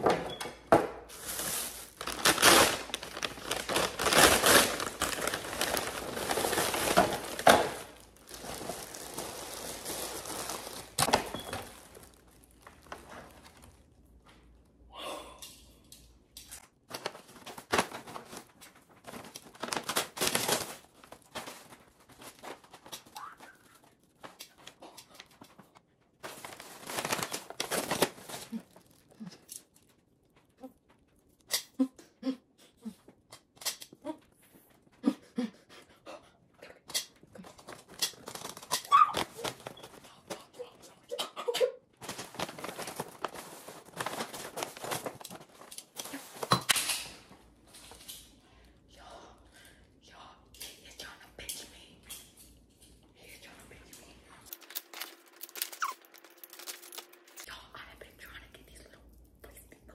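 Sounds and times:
grocery bags rustling: 0:01.1 - 0:14.3, 0:16.6 - 0:30.2, 0:41.9 - 0:48.2, 0:54.4 - 0:57.6
stifled vocal squeaks: 0:55.6 - 0:56.2.

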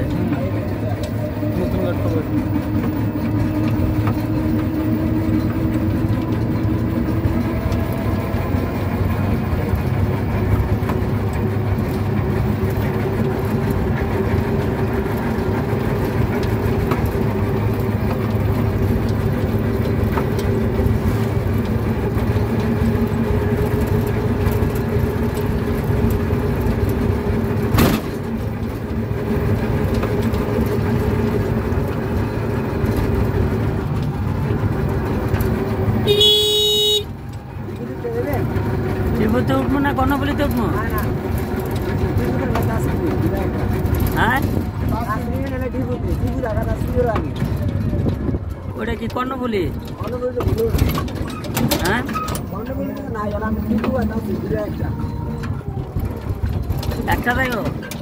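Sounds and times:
vehicle engine drone: 0:00.0 - 0:58.0.

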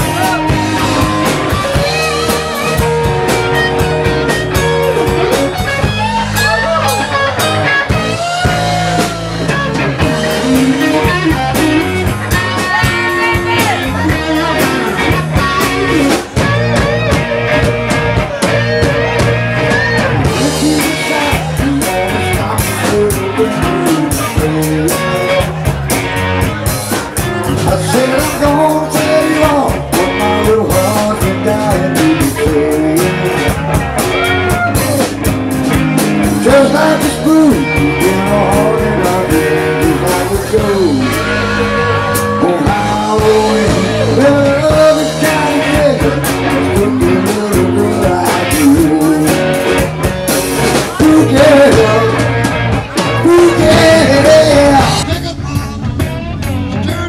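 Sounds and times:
bass: 0:00.0 - 0:57.0
drum kit beat: 0:00.0 - 0:57.0
electric guitar lines: 0:00.0 - 0:57.0
live rock band playing: 0:00.0 - 0:57.0.

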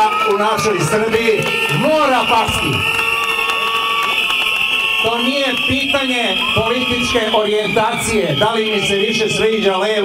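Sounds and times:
crowd blowing whistles: 0:00.0 - 0:10.0.

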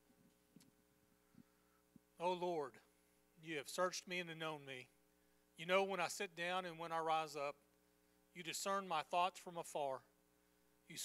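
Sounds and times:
low electrical hum: 0:00.0 - 0:11.0
person speaking: 0:02.2 - 0:04.9.

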